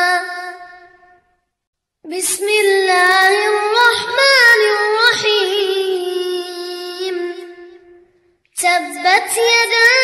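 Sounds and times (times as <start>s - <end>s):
child chanting melodic recitation: 0.0s - 1.0s, 2.1s - 7.8s, 8.6s - 10.0s.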